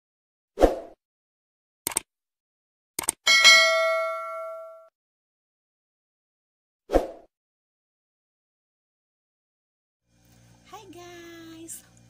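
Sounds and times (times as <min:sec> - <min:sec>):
quick clicks: 0:01.9 - 0:02.1, 0:03.0 - 0:03.2
notification bell ding: 0:03.3 - 0:04.9.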